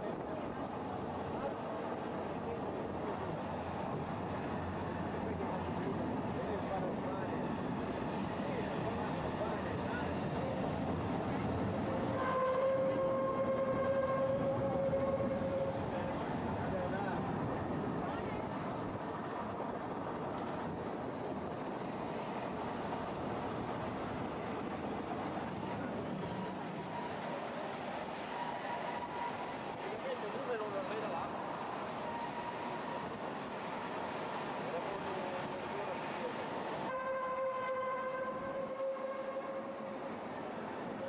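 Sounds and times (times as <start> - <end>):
faint voices: 0.0 - 12.2, 12.8 - 41.0
train rumble inside carriage: 0.0 - 41.0.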